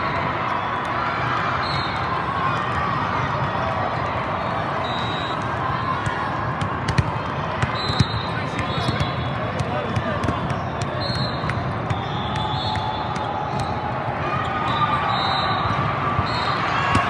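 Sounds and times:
murmur of voices echoing: 2.2 - 17.0
volleyballs struck and bouncing: 5.9 - 14.1, 16.8 - 17.0.

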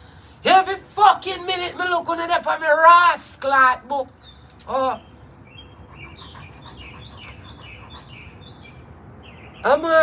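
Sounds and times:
bird chirping: 4.1 - 10.0.

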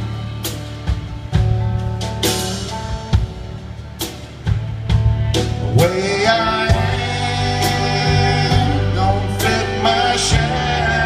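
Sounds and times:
country band playing: 0.0 - 11.0.

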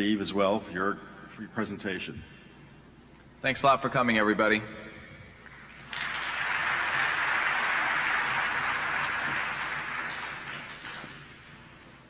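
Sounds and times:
audience applauding: 5.8 - 11.8.

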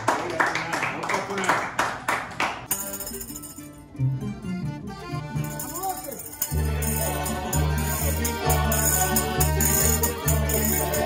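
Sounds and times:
accordion chords: 2.7 - 11.0
plucked string instruments: 2.7 - 11.0
tambourine: 5.4 - 11.0.

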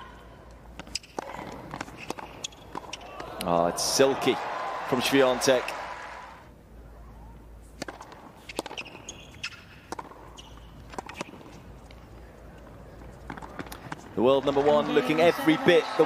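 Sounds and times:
tennis ball struck by racquet: 0.8 - 3.3, 7.8 - 11.6
shoe squeaks on court: 0.9 - 3.1, 8.4 - 11.6.

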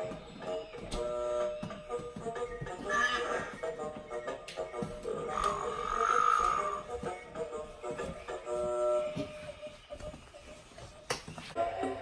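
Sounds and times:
music: 0.0 - 12.0
croaky call: 5.3 - 6.8.

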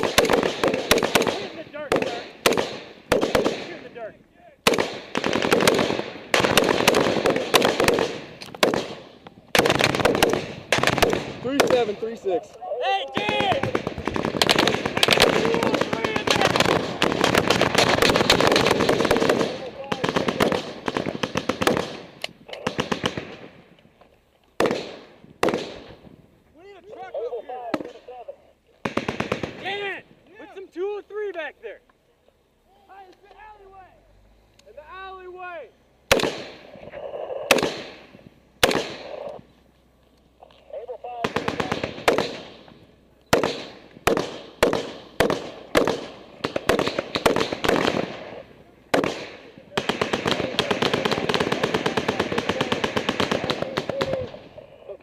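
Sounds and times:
rifle gunfire bursts: 0.0 - 4.0, 4.6 - 12.2, 13.2 - 23.6, 24.6 - 26.0, 28.8 - 29.9, 36.1 - 36.7, 37.4 - 39.3, 41.1 - 42.7, 43.3 - 54.4
men shouting: 12.1 - 13.8.

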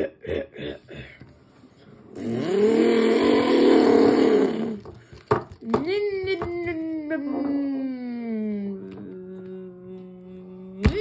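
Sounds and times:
person imitating car engine: 2.2 - 4.8.

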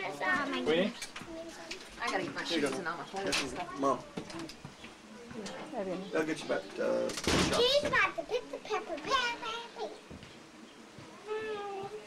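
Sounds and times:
young child's voice: 7.5 - 10.0.

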